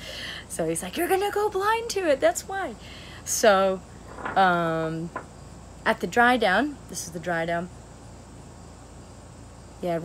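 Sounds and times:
crickets chirring: 0:00.0 - 0:10.0
quiet outdoor hiss: 0:00.0 - 0:10.0
woman's voice: 0:00.4 - 0:05.2, 0:05.9 - 0:07.7, 0:09.8 - 0:10.0.

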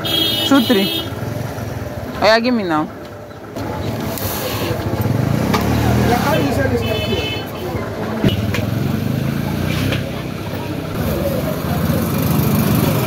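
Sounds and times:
vehicle engine running: 0:00.1 - 0:13.0.

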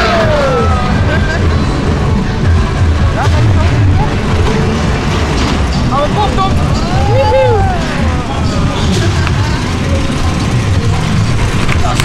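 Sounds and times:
roller coaster rumbling on track: 0:00.0 - 0:12.0
riders' voices: 0:00.2 - 0:12.0.

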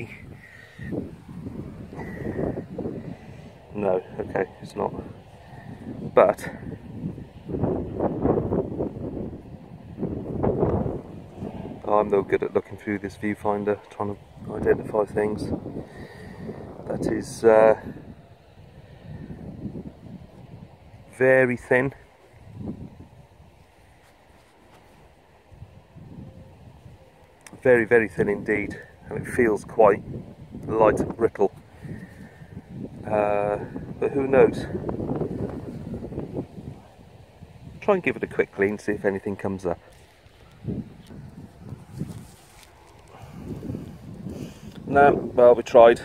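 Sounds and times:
wind on microphone: 0:00.0 - 0:46.0.

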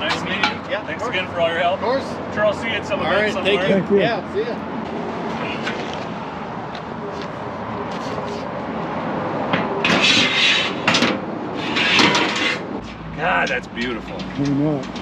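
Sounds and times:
metal ramp scraping and clanking: 0:09.8 - 0:15.0.

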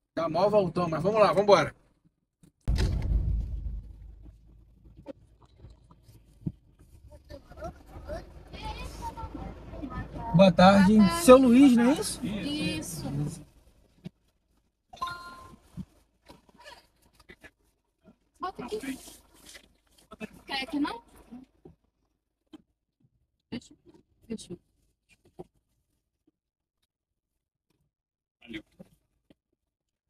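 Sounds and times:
low steady rumble: 0:02.7 - 0:13.7.

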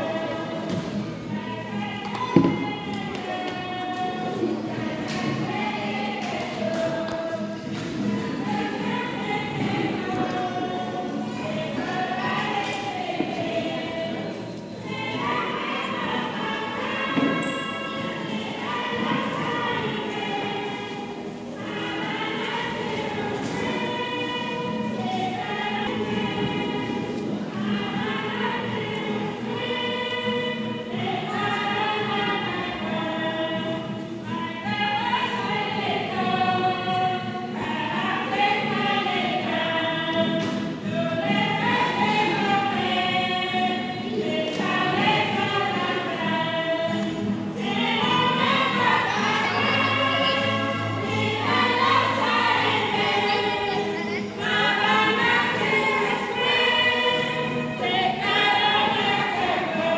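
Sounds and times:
crowd singing a hymn: 0:00.0 - 0:59.9.

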